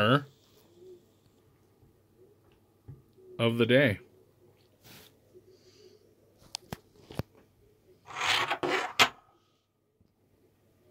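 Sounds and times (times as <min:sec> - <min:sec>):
metal disc scraping on wood: 0:08.1 - 0:09.2.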